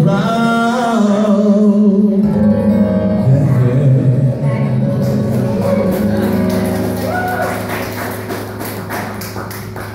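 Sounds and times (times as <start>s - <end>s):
acoustic guitar chord ringing: 2.1s - 7.0s.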